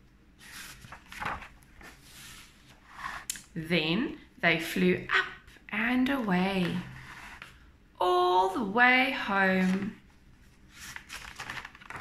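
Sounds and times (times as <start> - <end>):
paper page rustling: 0.4 - 3.2, 9.5 - 12.0.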